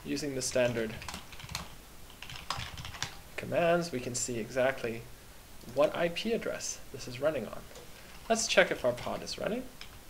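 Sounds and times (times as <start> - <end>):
typing on computer keyboard: 0.6 - 3.2.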